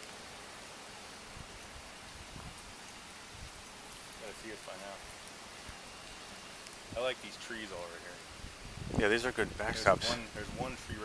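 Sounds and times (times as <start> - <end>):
low outdoor hiss: 0.0 - 11.0.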